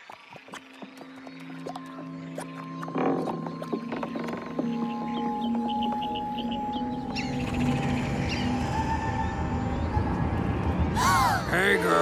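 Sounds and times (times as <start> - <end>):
music of long held notes: 1.4 - 12.0.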